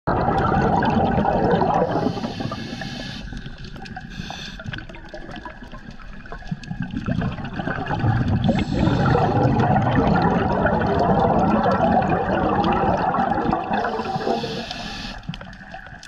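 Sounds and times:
underwater bubbling exhale: 0.1 - 16.0
regulator inhale hiss: 1.9 - 3.5, 4.1 - 4.8, 8.5 - 9.4, 13.8 - 15.4.

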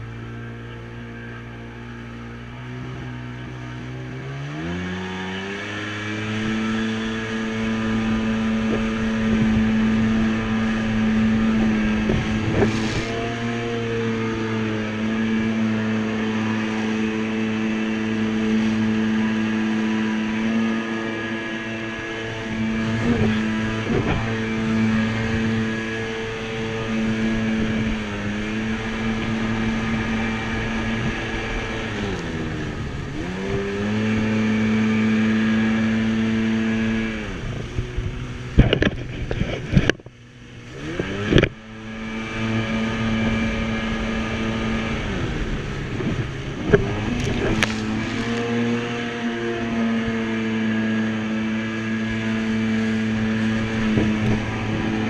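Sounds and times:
jet ski engine running: 0.0 - 55.0
rushing spray: 5.0 - 37.0.

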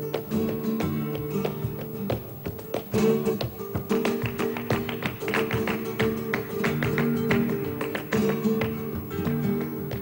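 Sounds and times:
flamenco acoustic guitars: 0.0 - 10.0.

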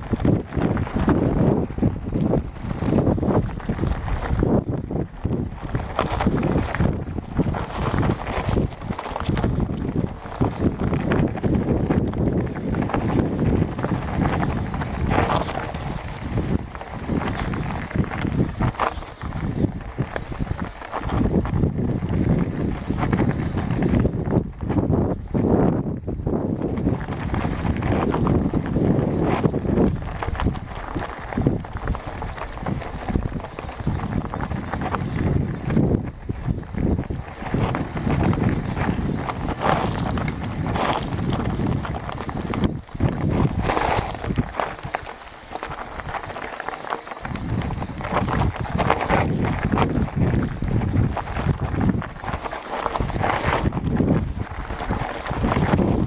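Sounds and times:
bike rattling: 0.0 - 56.0
tyres crunching on gravel: 0.0 - 56.0
wind rumble on microphone: 0.0 - 56.0.

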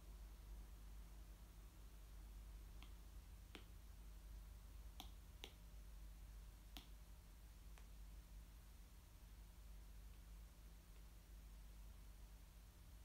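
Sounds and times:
faint sharp clicks: 2.8 - 3.8, 4.9 - 5.6.

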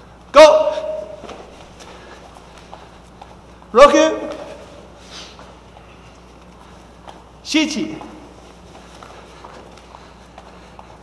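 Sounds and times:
low steady hum: 0.0 - 11.0
bare feet tapping on foam mats: 1.1 - 4.6, 5.4 - 11.0.

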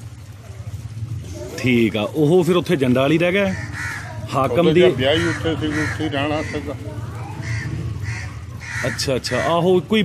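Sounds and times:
bird cawing: 3.5 - 9.8
man talking: 4.3 - 6.7.

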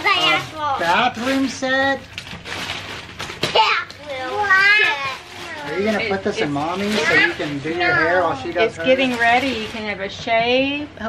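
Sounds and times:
child's voice: 0.0 - 0.8, 3.5 - 5.8, 7.0 - 8.3
cardboard box and paper rustling: 0.0 - 10.0.

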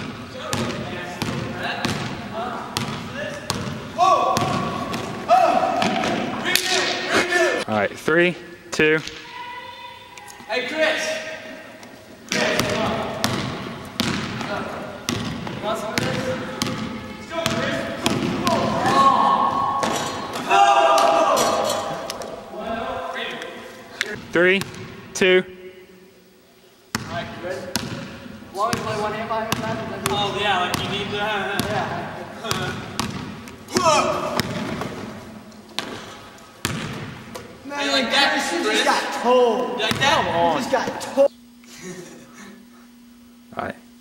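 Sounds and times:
basketball bouncing on hardwood floor: 0.5 - 2.2, 2.8 - 3.8, 12.3 - 14.5, 15.1 - 16.8, 32.5 - 35.0, 36.6 - 37.4
young men shouting: 3.9 - 7.7, 9.2 - 11.6, 15.7 - 23.4, 33.7 - 34.4.

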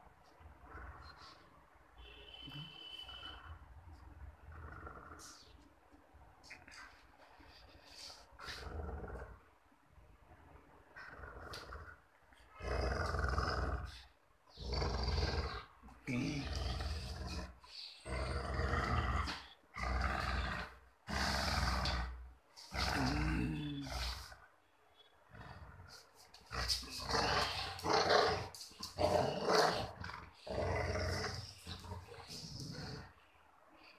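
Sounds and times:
dog play-growling: 6.5 - 9.5, 10.8 - 24.4, 25.3 - 33.2.

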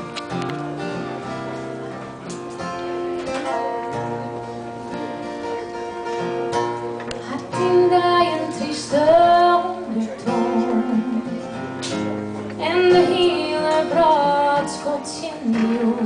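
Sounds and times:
strummed acoustic guitar: 0.0 - 16.0
woman singing: 7.2 - 11.6, 12.6 - 16.0.

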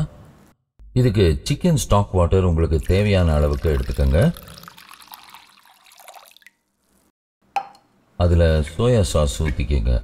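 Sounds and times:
liquid dripping into glass bowl: 2.8 - 7.1.

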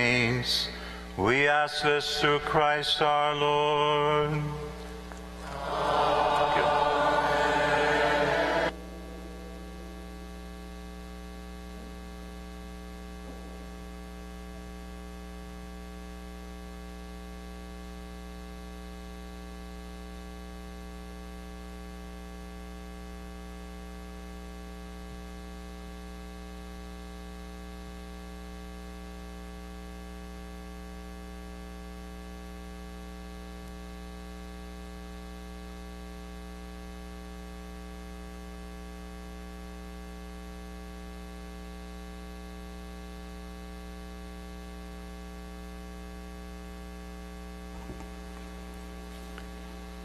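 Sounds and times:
electrical mains hum: 0.0 - 50.0.

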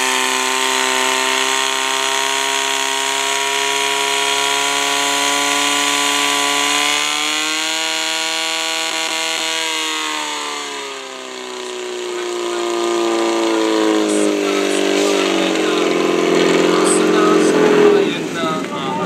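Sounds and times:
fire pump engine winding down: 0.0 - 19.0.

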